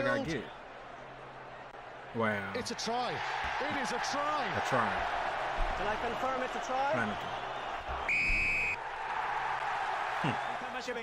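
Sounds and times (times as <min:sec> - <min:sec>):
crowd: 0:00.0 - 0:11.0
referee's whistle blast: 0:08.0 - 0:08.8.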